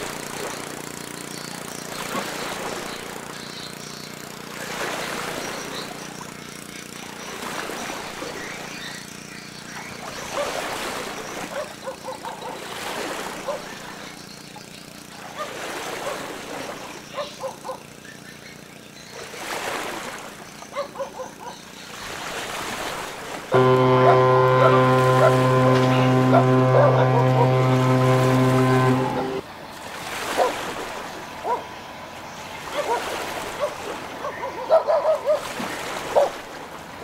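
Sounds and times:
low hum: 0:23.5 - 0:29.4
ship's horn blast: 0:23.5 - 0:29.4.

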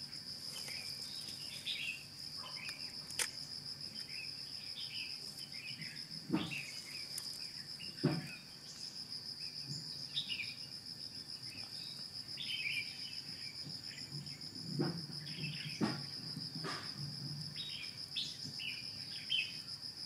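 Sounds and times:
insects trilling: 0:00.0 - 0:20.0
bird chirps: 0:00.6 - 0:02.8, 0:03.9 - 0:14.4.

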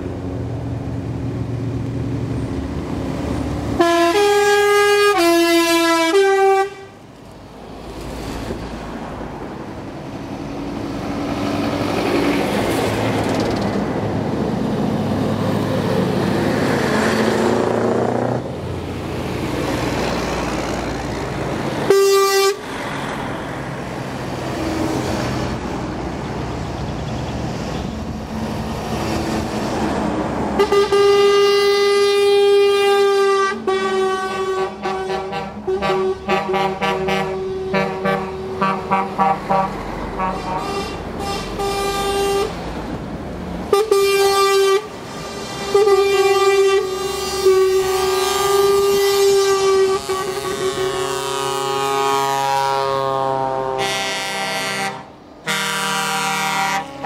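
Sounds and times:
diesel engines rumbling: 0:00.0 - 0:57.0
truck air horns: 0:03.7 - 0:07.0, 0:21.8 - 0:22.7, 0:30.6 - 0:42.6, 0:43.7 - 0:57.0.

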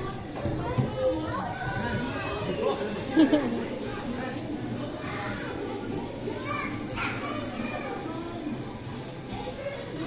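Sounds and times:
children playing and calling out: 0:00.0 - 0:10.0.

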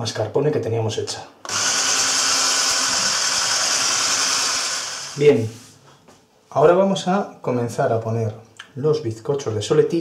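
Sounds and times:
electric whisk running in a bowl: 0:01.5 - 0:05.2.

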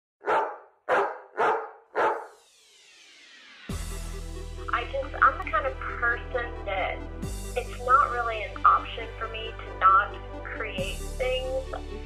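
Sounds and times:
dog barking: 0:00.2 - 0:02.3.

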